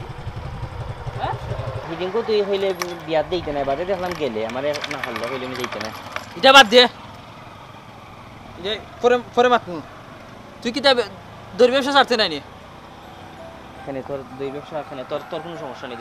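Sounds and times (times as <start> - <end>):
man speaking emphatically: 6.4 - 6.9, 10.6 - 12.4, 13.9 - 16.0.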